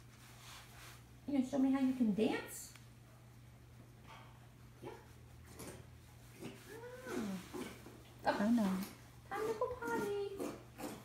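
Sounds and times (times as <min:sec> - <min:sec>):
steady low hum: 0:00.0 - 0:11.0
chimpanzee whimpering: 0:06.6 - 0:07.8.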